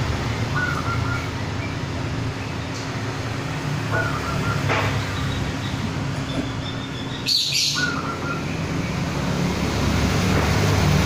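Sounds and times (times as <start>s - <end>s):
dove shrill chirp: 0.5s - 1.3s, 6.4s - 8.5s.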